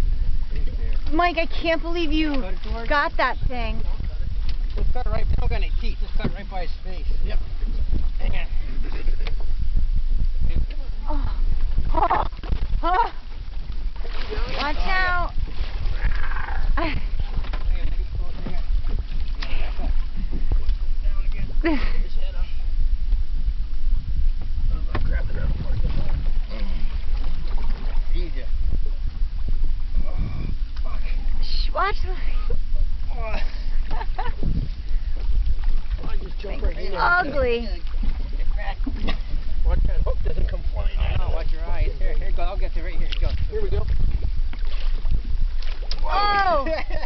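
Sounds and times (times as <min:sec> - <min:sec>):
sea water against boat: 0:00.0 - 0:47.0
wind rumble on microphone: 0:00.0 - 0:47.0.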